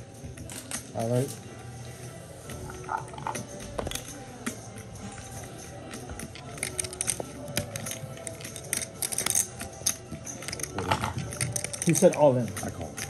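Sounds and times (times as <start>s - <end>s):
soft background music: 0.0s - 13.0s
poker chips clacking: 2.7s - 4.2s, 6.2s - 13.0s.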